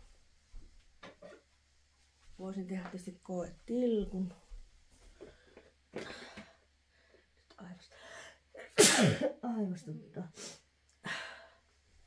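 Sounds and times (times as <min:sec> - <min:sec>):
faint breathing: 0:05.0 - 0:08.5
person sneezing: 0:08.6 - 0:09.3.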